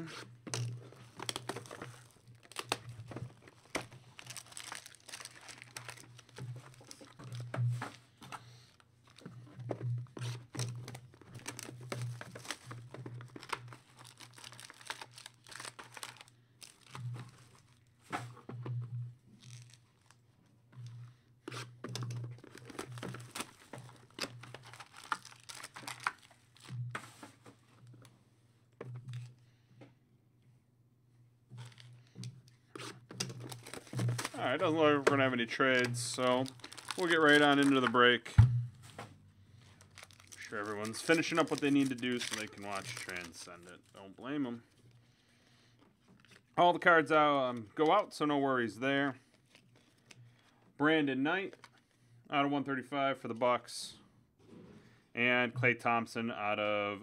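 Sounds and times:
plastic tearing: 0:00.5 - 0:07.5, 0:10.2 - 0:17.9, 0:19.4 - 0:20.2, 0:21.5 - 0:26.8, 0:31.6 - 0:32.0, 0:32.8 - 0:38.0, 0:39.6 - 0:44.0
plastic wrapping crinkling: 0:00.5 - 0:08.1, 0:10.2 - 0:18.0, 0:19.4 - 0:20.2, 0:21.5 - 0:26.8, 0:31.6 - 0:32.1, 0:32.8 - 0:38.2, 0:39.6 - 0:45.0, 0:49.2 - 0:50.5.

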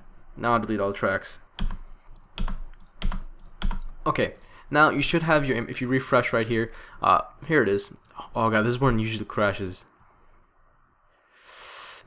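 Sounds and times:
computer keyboard keystrokes: 0:01.6 - 0:04.5.

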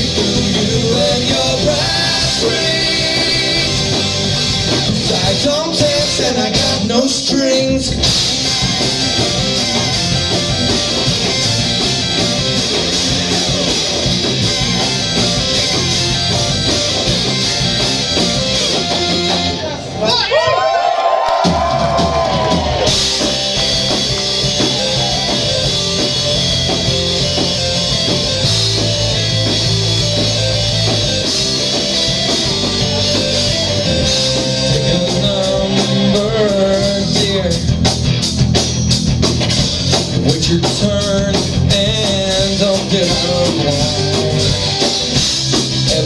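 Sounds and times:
bass guitar: 0:00.0 - 0:46.0
drums: 0:00.0 - 0:46.0
electric guitars: 0:00.0 - 0:46.0.

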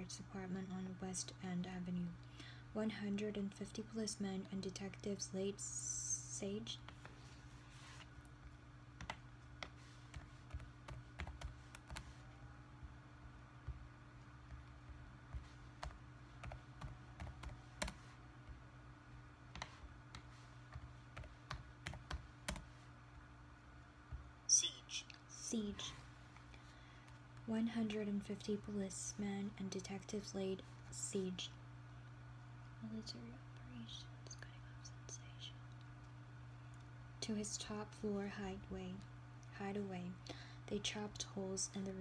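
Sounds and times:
low hum: 0:00.0 - 0:42.0
fingers clicking on laptop touchpad: 0:09.0 - 0:12.2.

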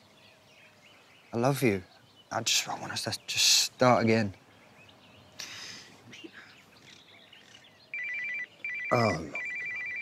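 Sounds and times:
phone ringing: 0:07.9 - 0:10.0.

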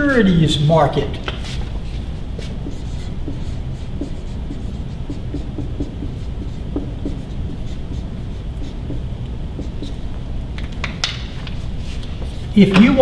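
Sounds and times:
marker squeaking on whiteboard: 0:01.2 - 0:10.2.

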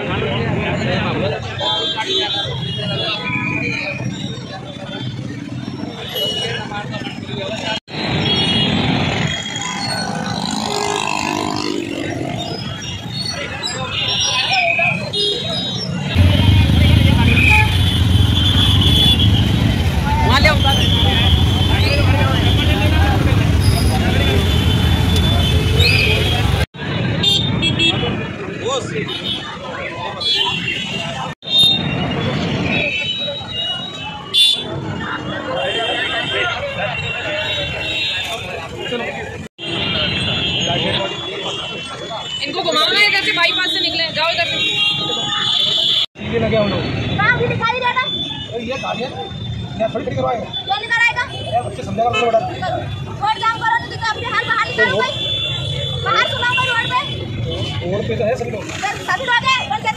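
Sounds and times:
babble of crowd voices: 0:00.0 - 0:59.9
street traffic: 0:00.0 - 0:59.9
motorcycles and cars passing: 0:03.6 - 0:13.6, 0:15.8 - 0:30.2, 0:46.2 - 0:59.9.

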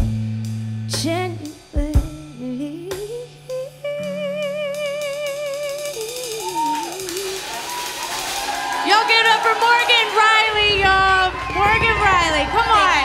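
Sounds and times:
electric guitar melody: 0:00.0 - 0:07.6
drums: 0:00.0 - 0:13.0
cymbal wash: 0:04.8 - 0:08.8.

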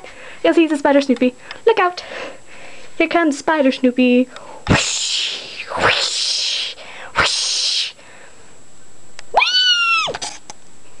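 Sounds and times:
cat meowing: 0:09.4 - 0:10.2.

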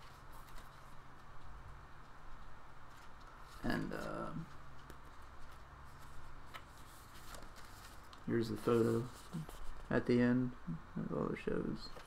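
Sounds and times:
paper pages turning: 0:00.0 - 0:01.5, 0:02.3 - 0:09.9
low room hum: 0:00.0 - 0:12.0.

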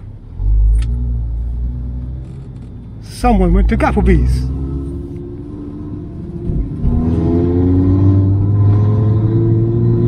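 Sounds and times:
car engine from inside cabin: 0:00.0 - 0:10.0.

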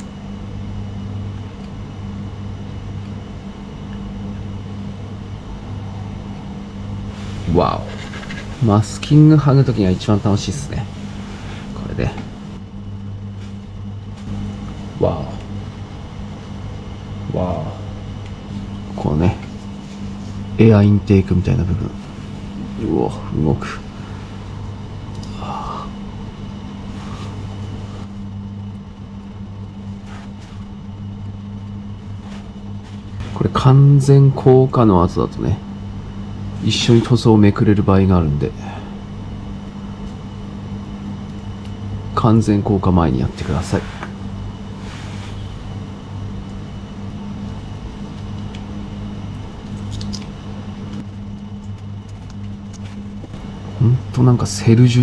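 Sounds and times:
low machine hum: 0:00.0 - 0:55.0.

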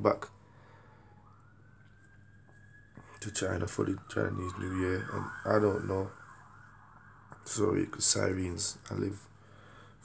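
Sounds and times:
faint police siren wailing: 0:00.0 - 0:10.0.

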